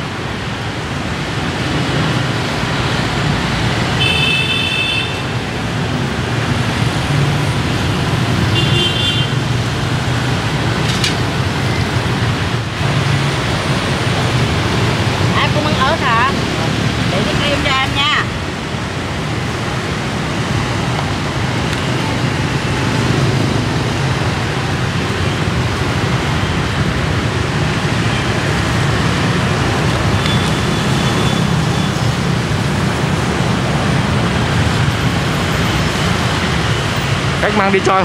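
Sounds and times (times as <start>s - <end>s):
low traffic rumble: 0.0s - 38.0s
motorbikes passing: 0.0s - 38.0s.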